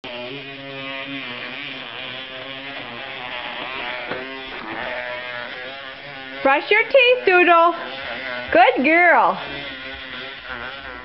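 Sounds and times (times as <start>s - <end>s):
electric toothbrush buzzing: 0.0s - 11.0s
animal chewing: 0.5s - 6.4s.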